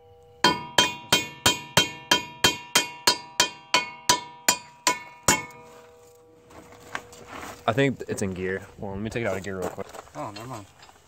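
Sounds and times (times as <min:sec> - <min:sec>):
steel hub ringing: 0:00.0 - 0:06.4
hammer striking steel hub: 0:00.4 - 0:06.2.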